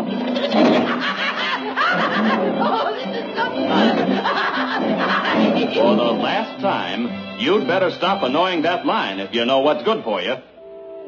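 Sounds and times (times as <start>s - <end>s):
cartoon character snickering: 0.3s - 2.7s, 3.6s - 6.2s.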